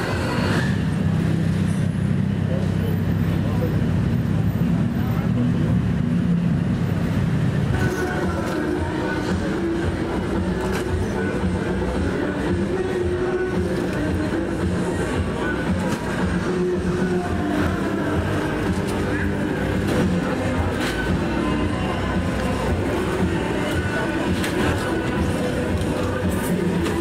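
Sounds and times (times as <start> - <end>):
passers-by talking: 0.0 - 27.0
traffic engine rumble: 0.0 - 27.0.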